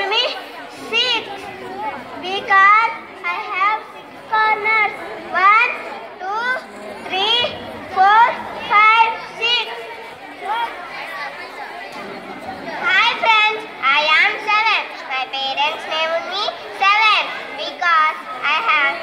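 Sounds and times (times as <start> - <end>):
child reciting into a microphone: 0.0 - 10.7, 12.7 - 19.0.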